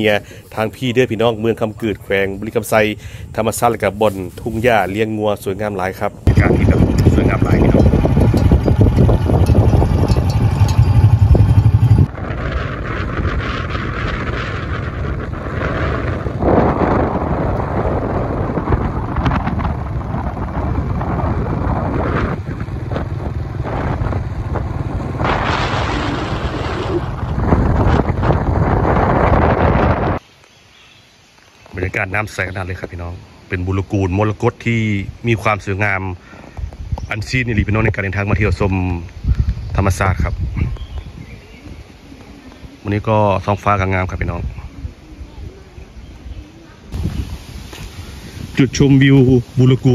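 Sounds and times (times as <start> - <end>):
vehicle wind and road noise: 0.0 - 30.3, 36.2 - 42.9, 44.3 - 49.9.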